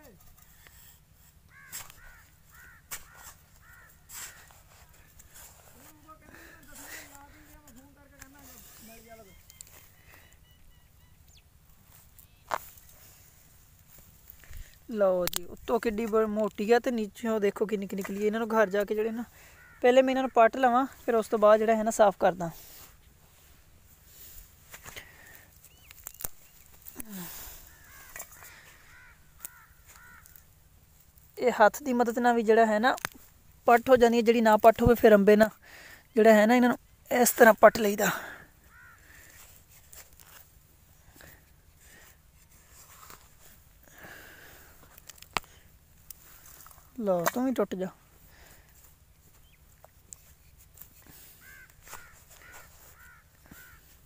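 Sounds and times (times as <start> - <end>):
hand trowel digging into soil: 0.2 - 6.0
bird calling: 1.4 - 6.0, 6.8 - 12.9, 18.6 - 21.0, 25.1 - 30.6, 38.1 - 39.4, 51.1 - 54.0.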